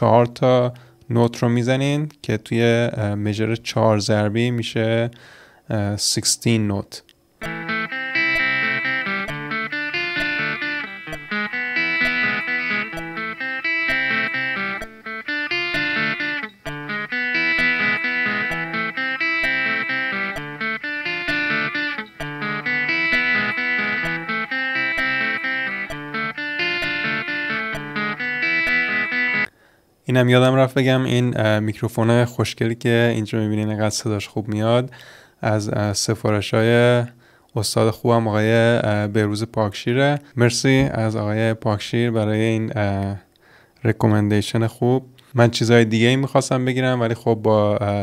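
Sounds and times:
electric guitar arpeggio: 7.4s - 29.5s
metronome ticking: 7.4s - 29.5s.

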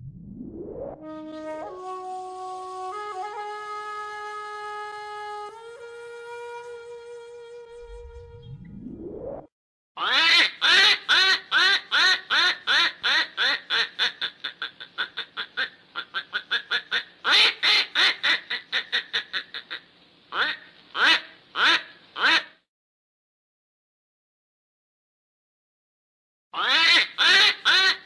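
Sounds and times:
duck quacking: 10.0s - 22.6s, 26.6s - 28.0s.

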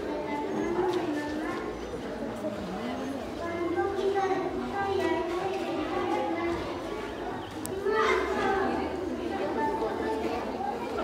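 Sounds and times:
children's voices: 0.0s - 11.0s.

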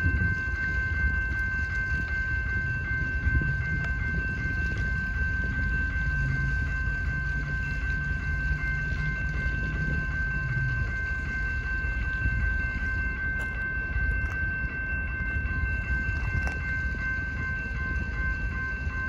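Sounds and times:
railroad crossing warning bell: 0.0s - 19.0s.

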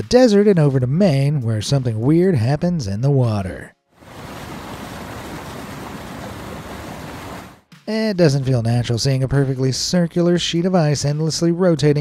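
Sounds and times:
river water rushing: 4.0s - 7.6s.

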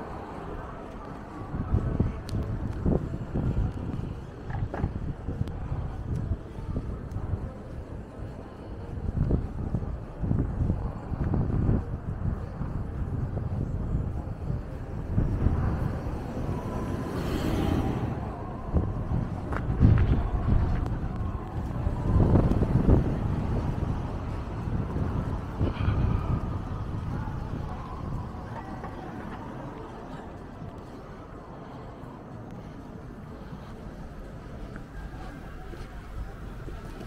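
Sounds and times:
street traffic: 0.0s - 37.0s
wind buffeting microphone: 0.0s - 37.0s
car passing: 14.2s - 37.0s.

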